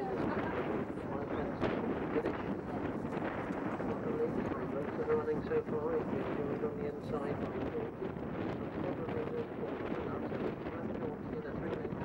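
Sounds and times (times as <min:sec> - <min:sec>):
commentator over loudspeaker: 0:00.0 - 0:12.0
wind noise on microphone: 0:00.0 - 0:12.0.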